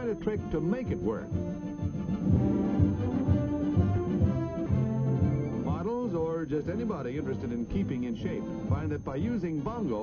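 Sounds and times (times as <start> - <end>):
orchestral music led by brass: 0.0 - 5.9, 6.6 - 8.8
low bass pulse: 0.9 - 9.4.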